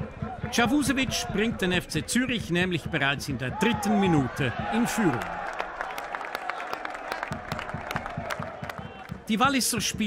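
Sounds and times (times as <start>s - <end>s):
football crowd cheering: 0.0s - 9.4s
hand claps: 5.1s - 9.2s.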